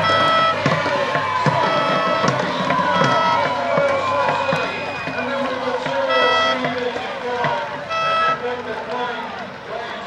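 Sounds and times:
horn blasts: 0.0s - 0.8s, 1.5s - 7.0s, 7.7s - 8.7s
spectators shouting and cheering: 0.0s - 10.0s.

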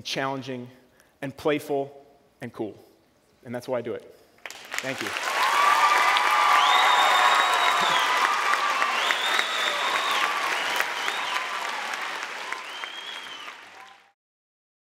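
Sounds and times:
audience applauding and cheering: 4.4s - 14.2s.

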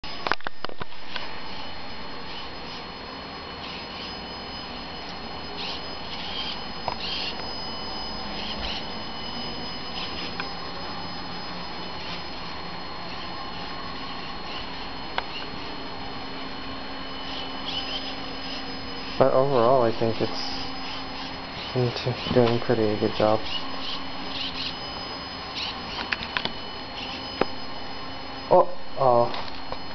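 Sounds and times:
model car motor whine: 0.0s - 29.9s.

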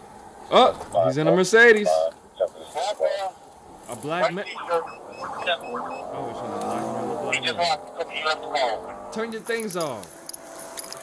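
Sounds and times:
car engine revving: 3.7s - 11.0s.

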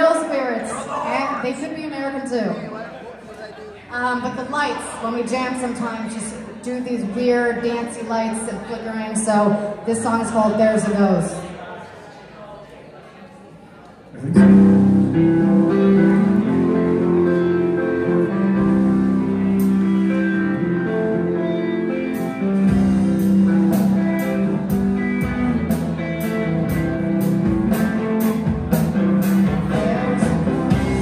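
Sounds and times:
bass guitar: 14.2s - 31.0s
electric guitars: 14.2s - 31.0s
drums with cymbal beat: 22.2s - 31.0s.

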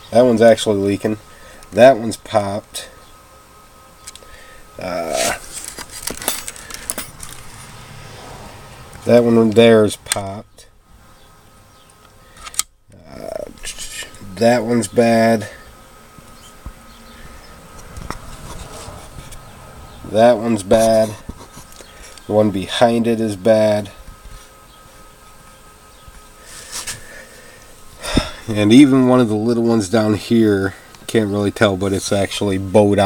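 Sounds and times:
faint steady hum: 0.0s - 33.0s.

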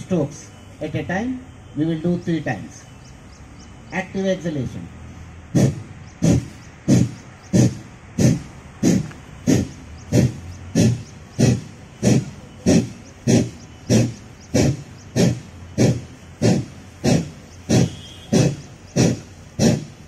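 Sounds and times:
forceful exhalations through nose: 5.5s - 20.0s.

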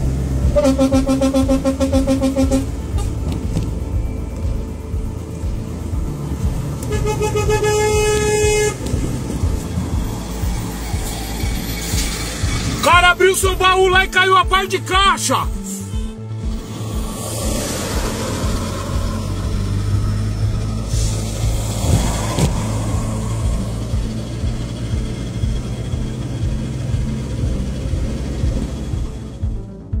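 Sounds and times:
music playing: 0.0s - 30.0s
truck engine and tyres drone: 0.0s - 30.0s.

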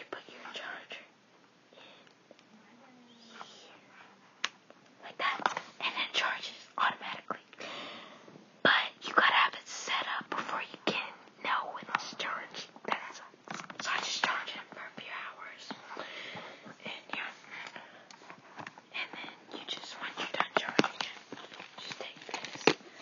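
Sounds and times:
person whispering: 0.0s - 1.1s, 2.5s - 3.9s, 5.0s - 7.5s, 8.7s - 15.8s, 16.7s - 17.4s, 18.9s - 22.4s.

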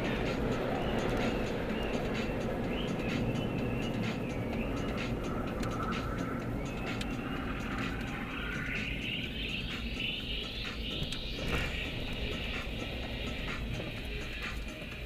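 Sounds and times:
car engine and road rumble: 0.0s - 15.0s
music playing in car: 0.0s - 15.0s.

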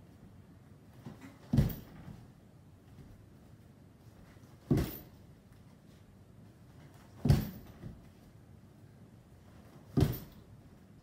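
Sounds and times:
punch thudding on punching bag: 1.5s - 2.0s, 4.7s - 5.1s, 7.2s - 7.7s, 9.9s - 10.4s.

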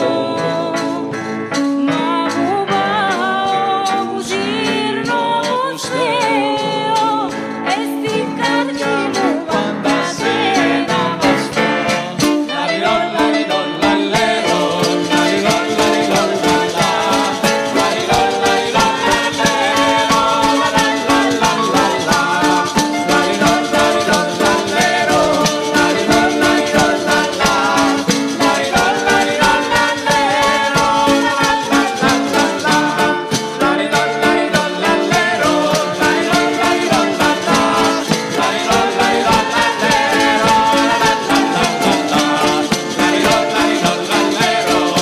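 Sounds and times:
plucked string instrument: 0.0s - 45.0s
jingling frame drum: 7.8s - 45.0s
keyboard melody: 8.9s - 45.0s.

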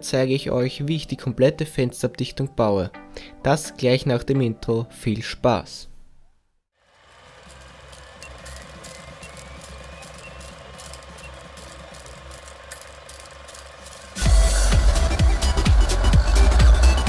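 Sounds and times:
film projector clatter: 6.8s - 16.7s
electronic dance track: 8.2s - 17.0s.

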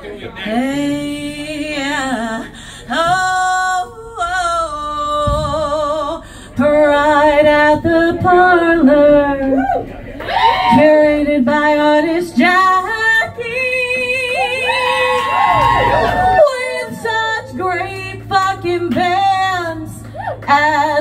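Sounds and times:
woman singing with vibrato: 0.4s - 9.6s, 10.6s - 21.0s.

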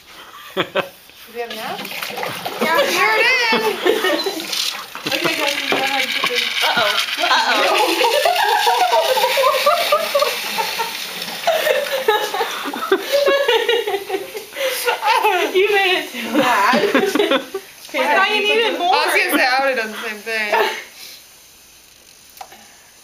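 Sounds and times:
voices talking excitedly: 1.4s - 9.9s, 14.5s - 20.7s
gas bubbling into water: 1.6s - 12.7s.

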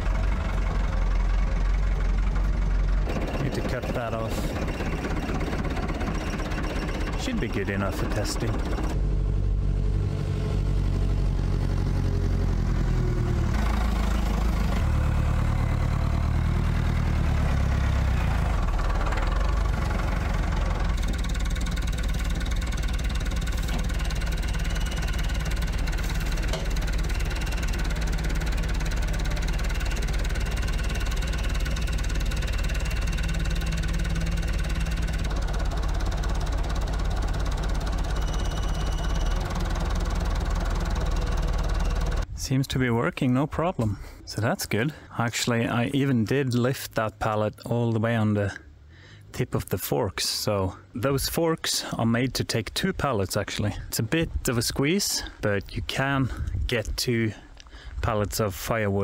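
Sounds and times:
tractor engine running: 0.0s - 59.0s.

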